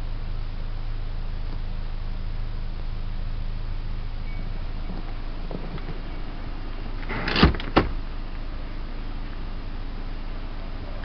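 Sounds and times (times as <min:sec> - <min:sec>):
leather seat rubbing rustle: 0:04.8 - 0:06.3.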